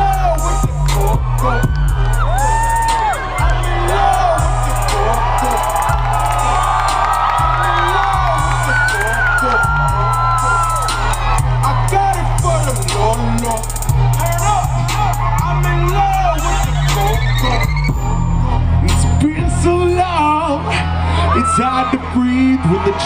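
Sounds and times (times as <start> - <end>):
crowd cheering and whooping: 0.0 - 23.0.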